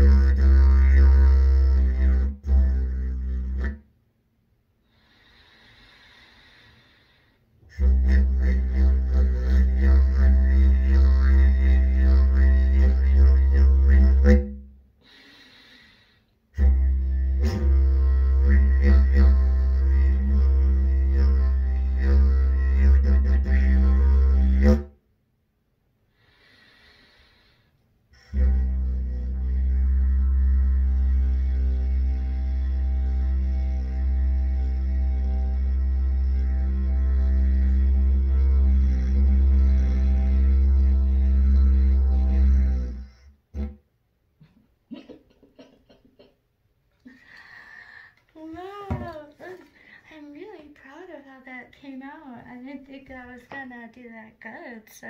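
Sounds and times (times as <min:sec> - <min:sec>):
didgeridoo drone: 0:00.0 - 0:03.8, 0:07.7 - 0:14.6, 0:16.6 - 0:24.9, 0:28.3 - 0:43.8.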